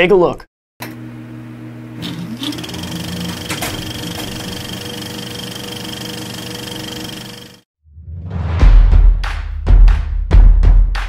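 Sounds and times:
film projector whirring: 2.0s - 7.6s.

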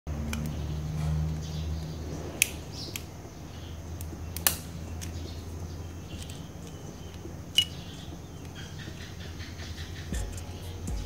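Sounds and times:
steady low hum: 0.1s - 11.0s
side cutters snapping metal: 4.0s - 5.2s.

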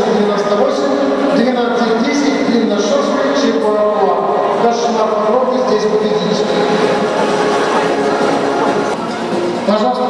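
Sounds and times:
crowd talking in echoey hall: 0.0s - 10.0s.

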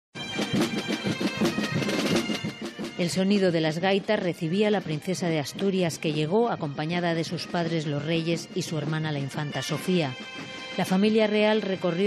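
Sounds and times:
snare and bass drums beating: 0.2s - 3.2s
bagpipes playing over drone: 0.2s - 12.0s.

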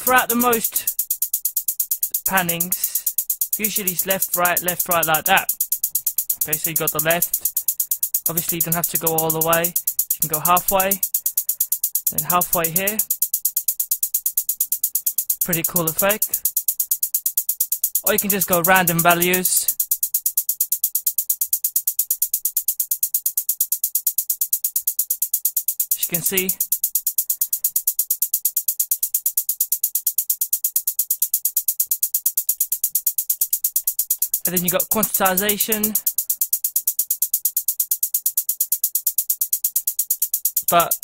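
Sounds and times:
fast hi-hat ticks: 0.0s - 41.0s.

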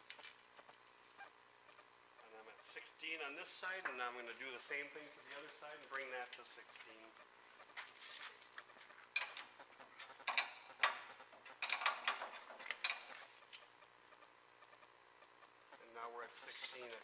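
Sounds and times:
faint shop hum: 0.0s - 17.0s
hand tool scraping steel frame: 9.2s - 13.6s, 16.4s - 17.0s.

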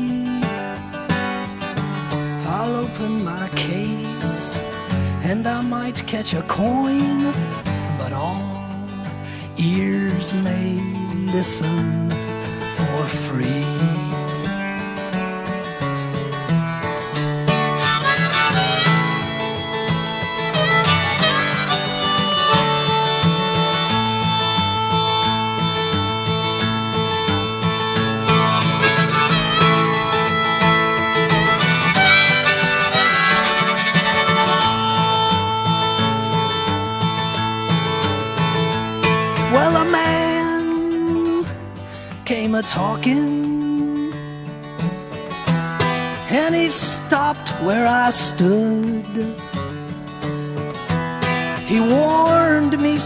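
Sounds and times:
acoustic guitar: 0.0s - 53.0s
harmonica solo: 14.0s - 42.1s.

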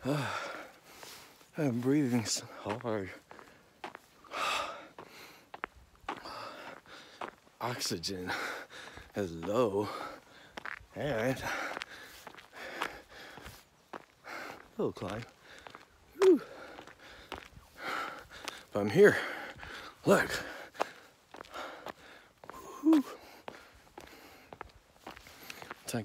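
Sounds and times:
man gasping: 0.0s - 1.4s, 4.2s - 7.4s, 8.2s - 9.2s, 9.8s - 10.6s, 11.4s - 13.5s, 15.4s - 24.7s
man breathing hard: 0.0s - 1.5s, 3.2s - 7.6s, 8.2s - 9.2s, 9.8s - 10.7s, 11.4s - 25.8s.

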